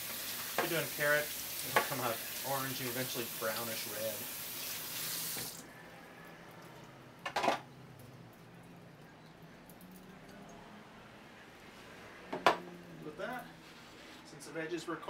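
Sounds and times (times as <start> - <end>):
faucet running into steel sink: 0.0 - 5.6.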